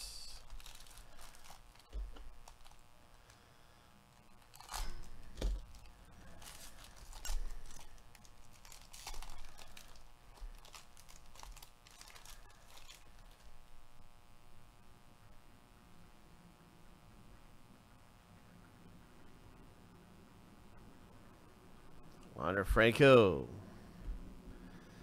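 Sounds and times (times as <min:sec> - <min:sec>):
foil wrapper crinkling and tearing: 0:00.1 - 0:03.5, 0:04.1 - 0:13.9.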